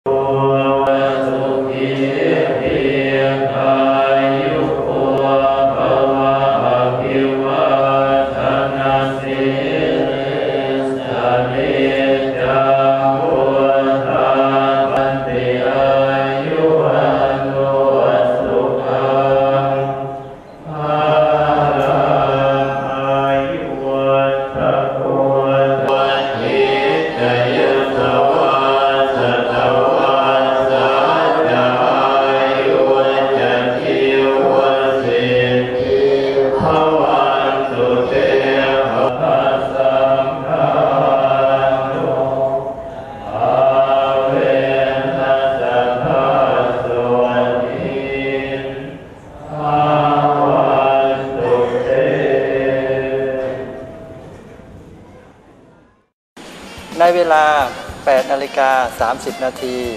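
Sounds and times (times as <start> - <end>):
monks chanting in monotone: 0.0 - 54.4.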